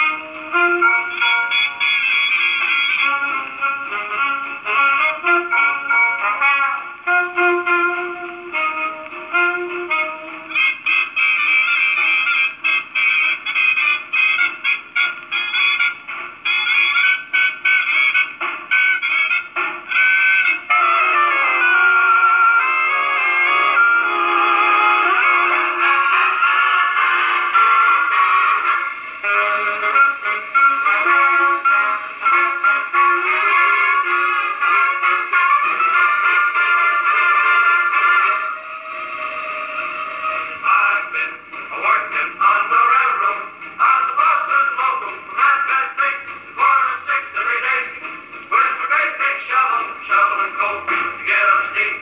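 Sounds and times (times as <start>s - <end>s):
gramophone playing dance-band music: 0.0s - 52.0s
person singing: 39.1s - 52.0s.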